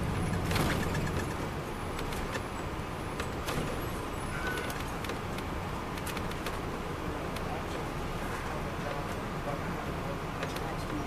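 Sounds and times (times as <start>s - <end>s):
interior rattles clicking: 0.0s - 3.8s
diesel engine drone: 0.0s - 11.0s
road noise: 0.0s - 11.0s.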